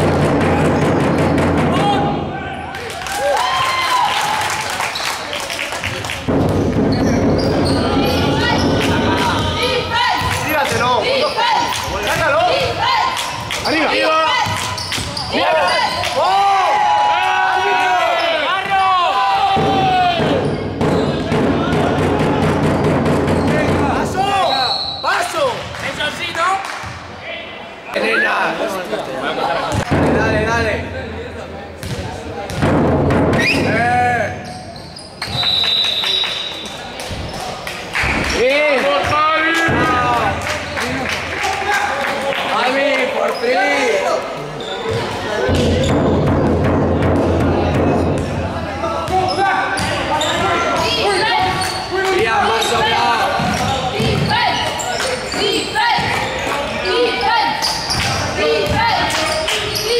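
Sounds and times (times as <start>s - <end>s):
loud shout: 1.7s - 4.8s, 7.9s - 20.5s, 54.0s - 59.9s
sneakers squeaking on floor: 6.5s - 16.2s, 20.3s - 21.3s, 24.4s - 25.9s, 33.4s - 37.6s, 44.4s - 46.2s, 49.0s - 59.9s
players shouting calls: 7.0s - 26.4s, 48.7s - 59.9s.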